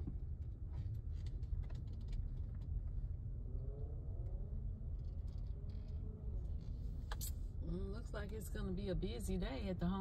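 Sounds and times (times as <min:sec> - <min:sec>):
car engine and tyres rumbling: 0:00.0 - 0:10.0.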